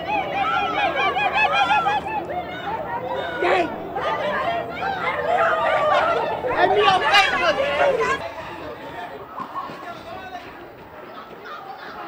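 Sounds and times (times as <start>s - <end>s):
teenagers laughing: 0.0s - 12.0s
voices calling out: 0.0s - 12.0s.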